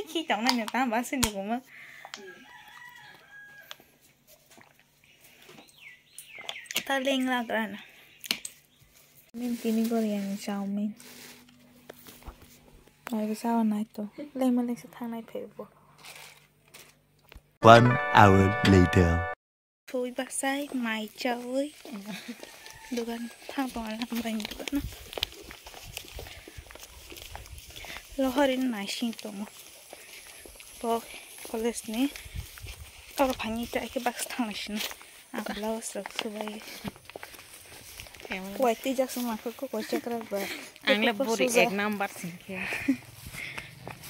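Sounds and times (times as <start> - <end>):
rooster crowing: 2.2 - 3.8, 22.4 - 23.5
footsteps walking: 8.8 - 13.0, 20.7 - 44.0.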